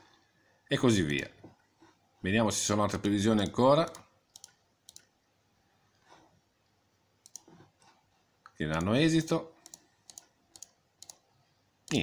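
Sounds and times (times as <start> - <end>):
computer mouse clicks: 3.4 - 5.1, 7.2 - 9.0, 9.6 - 11.3.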